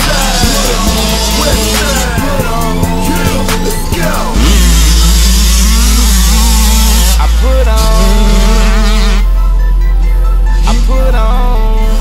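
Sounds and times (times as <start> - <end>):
deep held bass note: 0.0 - 11.9
dirt bike engines revving: 0.0 - 12.0
hip hop backing track: 0.0 - 12.0.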